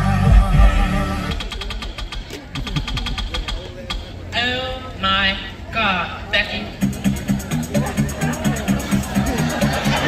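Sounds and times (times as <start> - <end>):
music with heavy bass beat: 0.0 - 4.1, 6.8 - 10.0
low murmur: 0.0 - 10.0.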